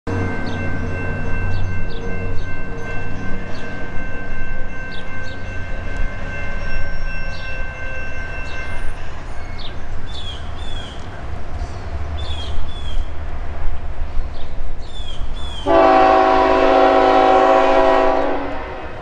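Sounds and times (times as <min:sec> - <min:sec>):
birds chirping: 0:00.1 - 0:13.2, 0:14.0 - 0:15.8
locomotive horn chord: 0:15.6 - 0:19.0.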